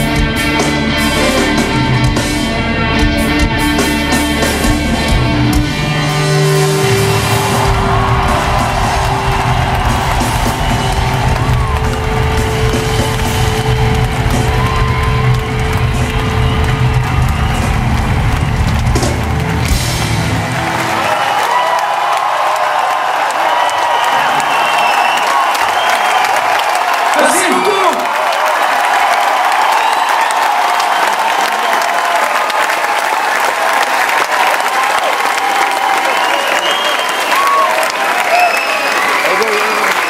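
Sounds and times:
live rock band playing: 0.0 - 21.4
crowd cheering and whooping: 5.0 - 40.0.

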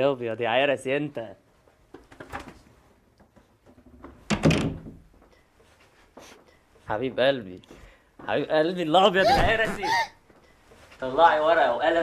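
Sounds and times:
loud thud: 9.3 - 9.8.

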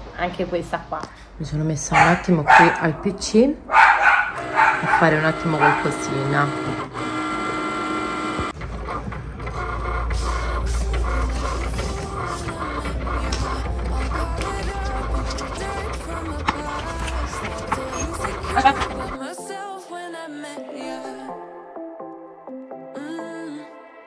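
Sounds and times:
cutting machine whine: 4.0 - 19.2
background music with deep bass: 9.8 - 19.8.

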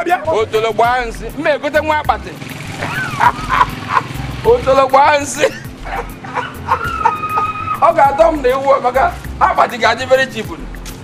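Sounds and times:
man shouting: 6.7 - 8.4
music with pulsing beat: 10.4 - 11.0.

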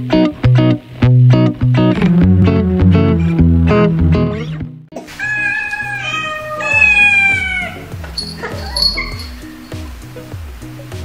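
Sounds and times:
background music with bass line: 0.0 - 5.0, 7.4 - 11.0
cat meowing: 5.0 - 9.6.

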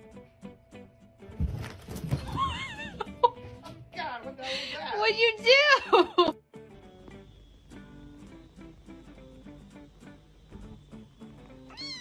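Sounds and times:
cats scrambling: 1.3 - 3.9.

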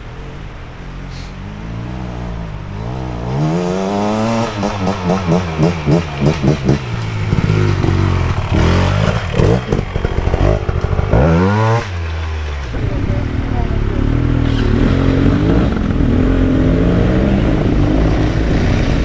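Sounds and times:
motorcycle engine revving: 0.0 - 19.0
engine clatter: 4.4 - 19.0.

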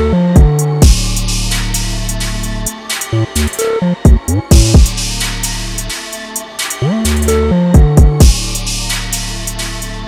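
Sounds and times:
hi-hats: 0.0 - 10.0.

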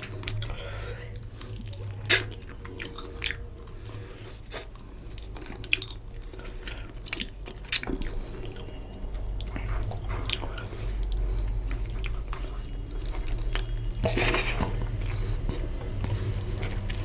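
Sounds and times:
wet chewing: 0.0 - 17.0
mouth smacks: 1.2 - 3.4.

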